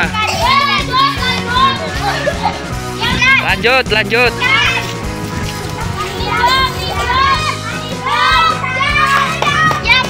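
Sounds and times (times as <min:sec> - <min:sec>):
background music: 0:00.0 - 0:10.0
children chattering and calling out: 0:00.0 - 0:10.0.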